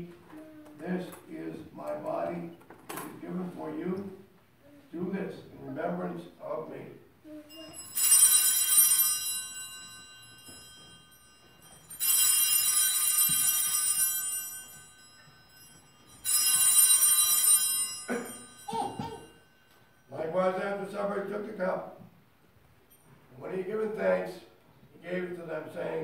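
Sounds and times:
altar bells jingling: 7.5 - 20.4
person coughing: 18.1 - 19.4.

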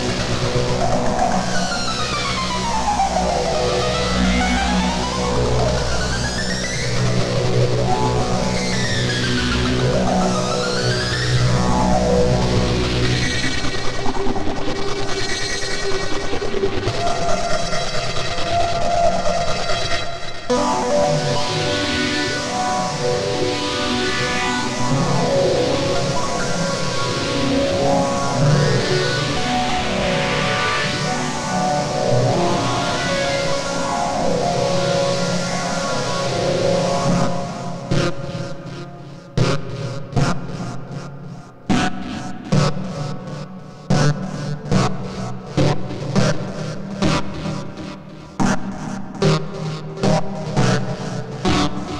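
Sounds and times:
distorted synthesizer music: 0.0 - 19.9, 20.5 - 41.1.

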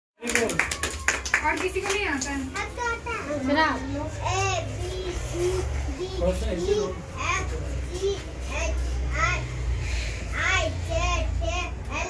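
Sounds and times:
children chattering and calling out: 2.4 - 12.0.

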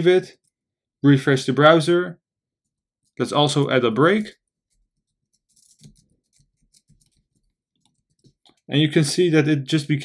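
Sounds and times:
keyboard typing: 4.7 - 8.7.

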